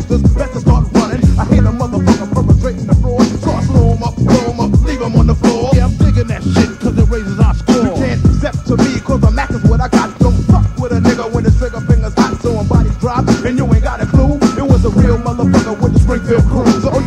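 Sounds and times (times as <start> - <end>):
rapping over a drum beat: 0.0 - 17.0.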